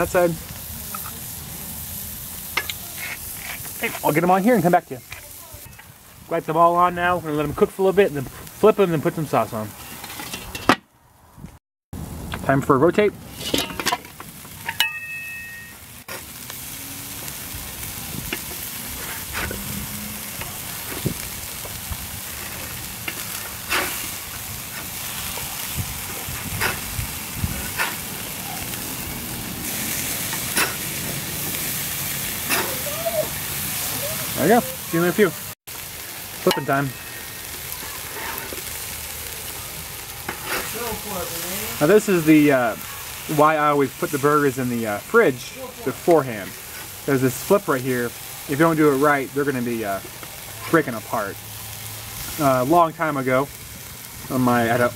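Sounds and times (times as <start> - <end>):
burger patties sizzling on grill: 0.0 - 10.6, 12.0 - 54.9
metal grill lid clanking: 9.9 - 10.8, 13.3 - 15.7, 36.4 - 38.7.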